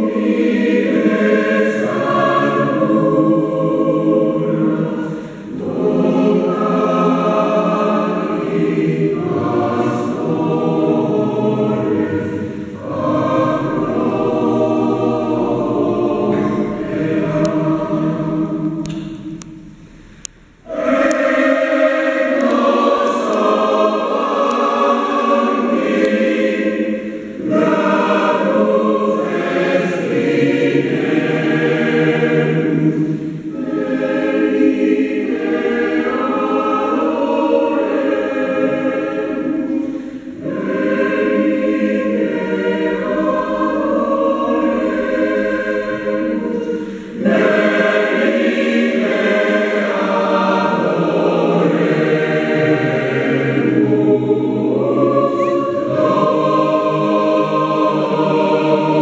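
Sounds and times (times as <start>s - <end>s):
mixed choir singing a carol: 0.0s - 59.0s.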